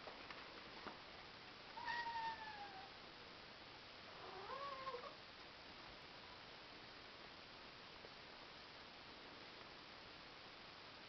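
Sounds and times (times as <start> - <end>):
cat meowing faintly: 1.8 - 3.0, 4.2 - 5.2.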